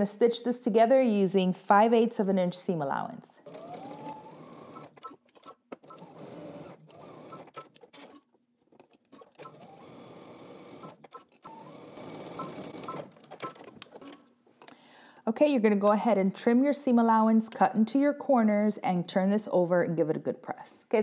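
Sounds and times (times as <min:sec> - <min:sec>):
sewing machine stitching: 0:03.4 - 0:14.3.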